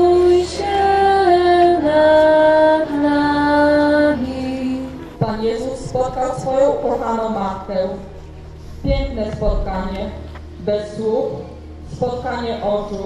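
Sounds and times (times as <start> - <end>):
woman singing a slow hymn: 0.0 - 8.1, 8.8 - 13.0.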